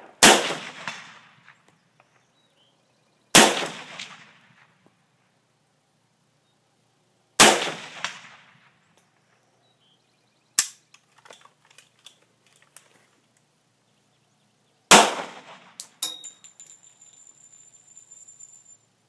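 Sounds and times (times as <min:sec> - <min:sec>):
rifle shot with echo: 0:00.0 - 0:01.6, 0:03.3 - 0:04.8, 0:07.4 - 0:08.8, 0:14.9 - 0:16.0
pistol shot with echo: 0:00.2 - 0:01.4, 0:03.3 - 0:04.6, 0:07.4 - 0:08.6, 0:14.9 - 0:15.9
gun handling clicks and rattles: 0:10.6 - 0:13.5, 0:15.8 - 0:18.5.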